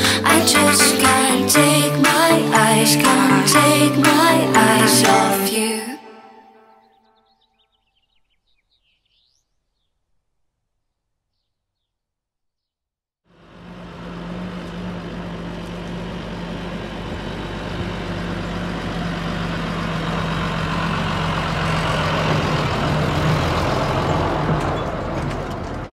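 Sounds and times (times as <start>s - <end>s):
tractor engine passing: 13.4s - 25.9s.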